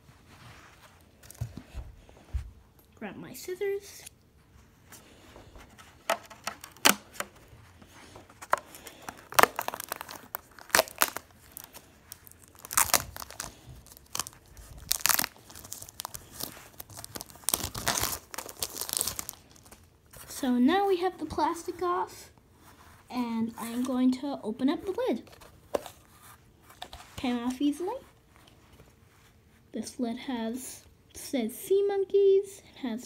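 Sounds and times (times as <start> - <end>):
plastic shrink wrap crinkling: 5.1 - 20.2.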